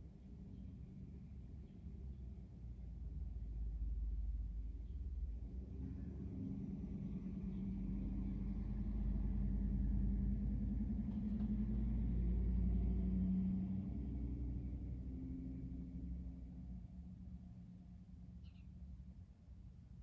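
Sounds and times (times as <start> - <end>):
vehicle engine rumble: 0.3 - 20.0.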